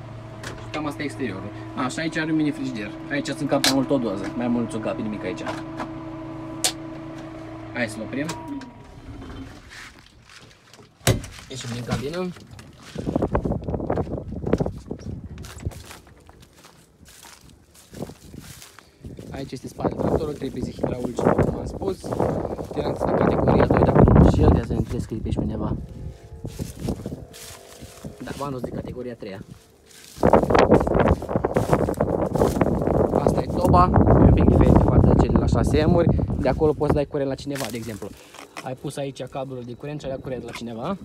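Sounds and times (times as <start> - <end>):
wind buffeting microphone: 11.2 - 38.2
footsteps on dry straw stubble: 12.7 - 40.9.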